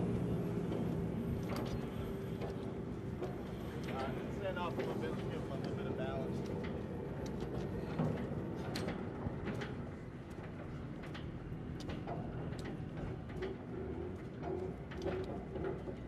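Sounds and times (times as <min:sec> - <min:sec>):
low engine rumble: 0:00.0 - 0:16.0.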